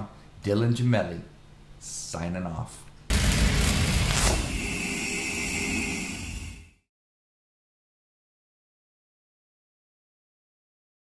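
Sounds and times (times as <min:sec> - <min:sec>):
high ringing tone: 0:04.1 - 0:06.9.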